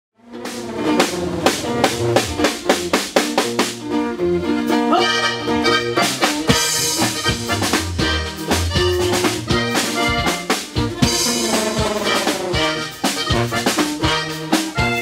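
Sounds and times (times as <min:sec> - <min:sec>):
drum kit beat: 0:00.2 - 0:04.2, 0:05.9 - 0:15.0
bajo sexto: 0:00.2 - 0:15.0
tuba bass: 0:00.2 - 0:15.0
button accordion: 0:05.0 - 0:15.0.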